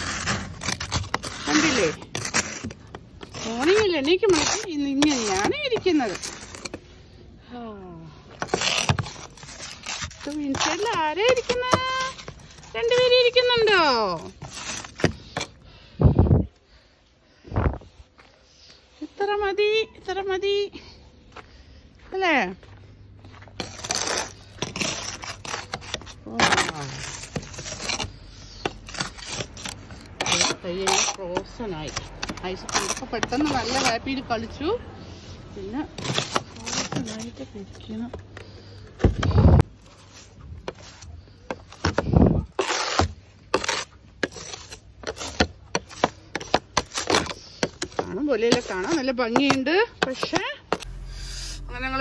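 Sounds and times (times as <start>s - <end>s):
snow brush scraping car window: 0.0s - 7.1s, 8.4s - 15.5s, 23.6s - 34.4s, 35.6s - 38.6s, 39.2s - 50.9s
brush sweeping snow: 0.0s - 7.2s, 23.6s - 32.0s
low rumbles: 50.6s - 52.0s.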